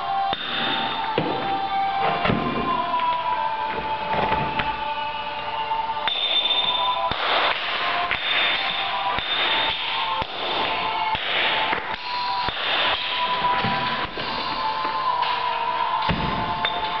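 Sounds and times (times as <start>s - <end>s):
background music with held notes: 0.0s - 17.0s
hammer striking steel chisel: 8.1s - 10.4s.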